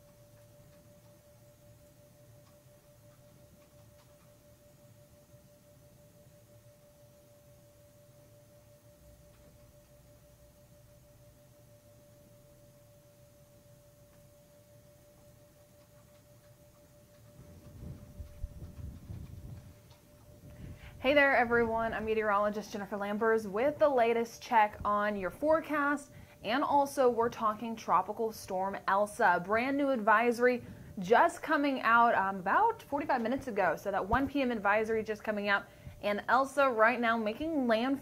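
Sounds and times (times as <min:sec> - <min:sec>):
low background hum: 0:00.0 - 0:38.0
low rumbling and bumps: 0:17.4 - 0:22.4.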